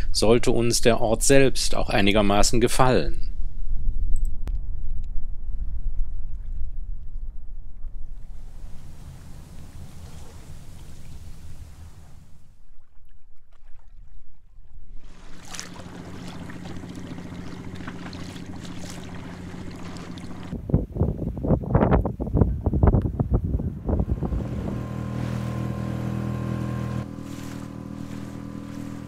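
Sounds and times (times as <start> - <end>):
wind on microphone: 3.3 - 12.4, 15.0 - 27.0
outboard motor running: 8.2 - 12.6, 15.1 - 20.6, 23.8 - 29.0
rushing water: 8.3 - 12.9, 15.0 - 20.6, 24.1 - 29.0.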